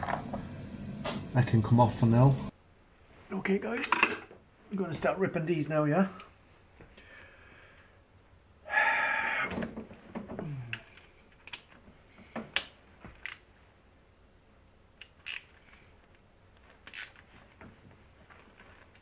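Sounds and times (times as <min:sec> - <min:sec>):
ratchet clicking on bolts: 0:15.0 - 0:15.5.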